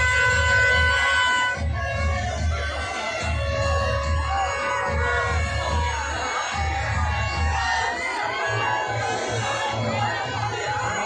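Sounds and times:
conch shell blown: 0:00.0 - 0:06.6
steady drumbeat: 0:00.0 - 0:11.0.

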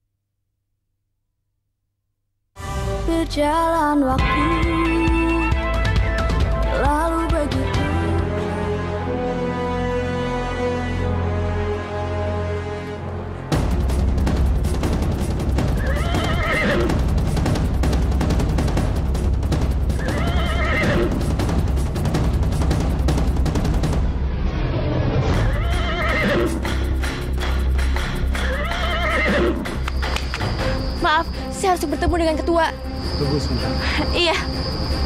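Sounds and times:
background music: 0:02.6 - 0:24.4, 0:25.1 - 0:35.0
galloping hoofbeats: 0:14.8 - 0:21.6, 0:25.4 - 0:30.9
horse neighing: 0:15.8 - 0:16.9, 0:20.0 - 0:21.1, 0:25.4 - 0:26.6, 0:28.4 - 0:29.8.

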